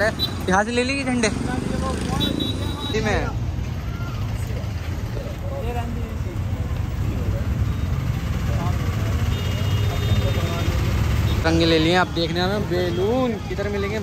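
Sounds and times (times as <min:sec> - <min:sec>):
traffic rumble: 0:00.0 - 0:14.0
voices nearby: 0:00.0 - 0:14.0.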